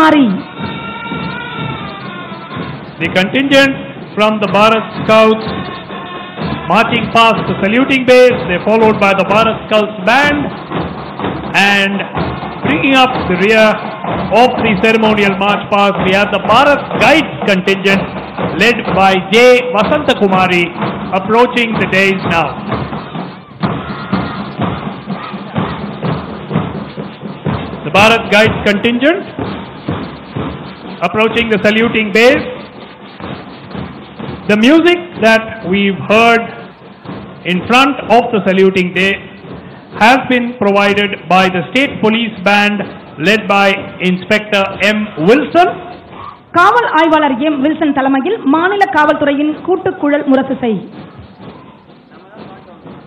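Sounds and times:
broadcast commentary: 0.0s - 53.0s
marching band long notes: 0.0s - 53.0s
steady drum beat: 0.0s - 53.0s.

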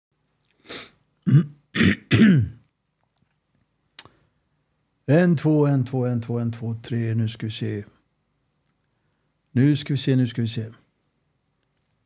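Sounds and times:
man clearing his throat: 1.2s - 2.6s.

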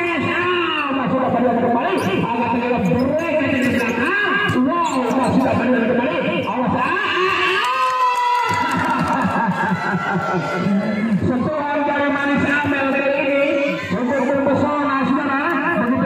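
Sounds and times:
commentator talking: 0.0s - 16.0s
spectators and players calling out: 0.0s - 16.0s.

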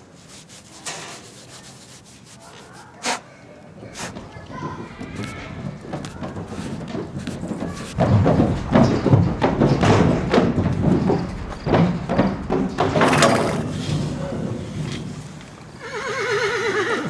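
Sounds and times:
hooves on metal trailer floor: 3.8s - 15.8s.

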